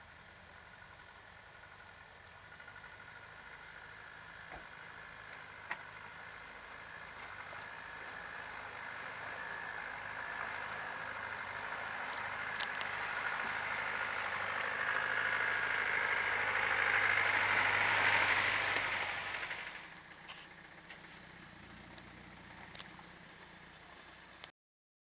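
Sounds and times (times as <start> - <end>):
car engine running: 0.0 - 24.5.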